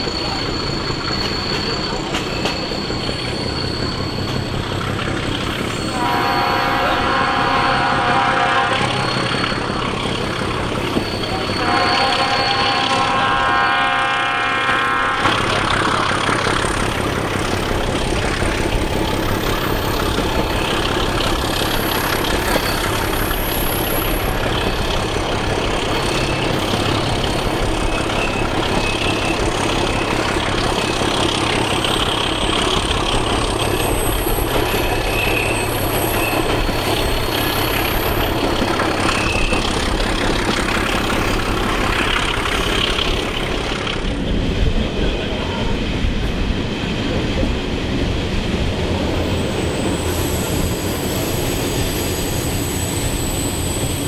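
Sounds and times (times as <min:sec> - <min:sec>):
wheel squeal: 0:00.0 - 0:44.3, 0:49.1 - 0:54.0
locomotive diesel engine: 0:00.0 - 0:54.0
train wheels on rails: 0:00.0 - 0:54.0.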